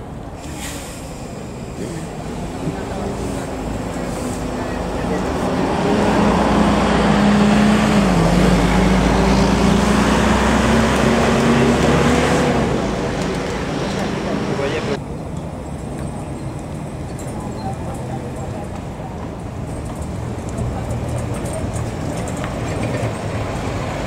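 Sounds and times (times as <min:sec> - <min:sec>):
diesel bus driving past: 0:00.0 - 0:24.0.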